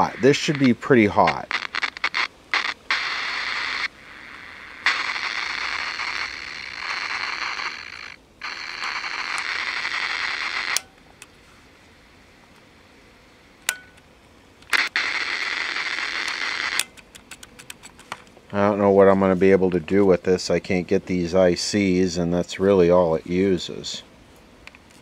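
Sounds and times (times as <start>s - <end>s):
radio static hiss: 0.0s - 25.0s.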